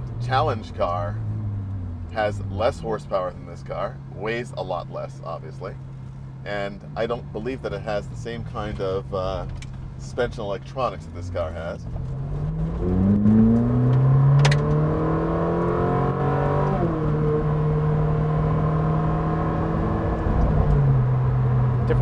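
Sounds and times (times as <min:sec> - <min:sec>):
car engine accelerating hard: 0:06.6 - 0:22.0.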